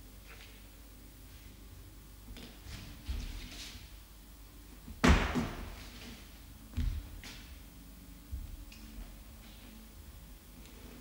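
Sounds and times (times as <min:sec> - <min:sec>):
loud thump in bare room: 0:05.0 - 0:05.8.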